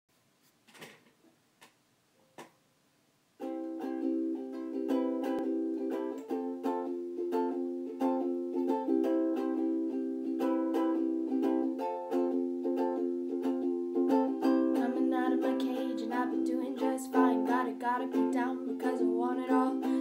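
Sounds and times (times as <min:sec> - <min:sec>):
acoustic string instrument strumming: 0:03.4 - 0:20.0
person singing: 0:14.4 - 0:20.0.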